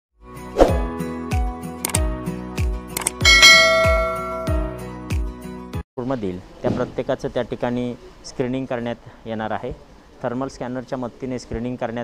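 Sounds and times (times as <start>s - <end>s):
short clicks: 1.8s - 2.0s
bright bell ding: 3.2s - 4.8s
intro jingle with kick drum: 3.2s - 4.8s.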